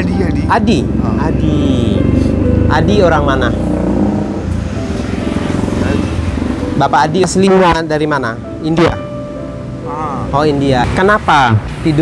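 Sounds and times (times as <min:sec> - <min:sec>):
vehicle engines rumbling: 0:00.0 - 0:12.0.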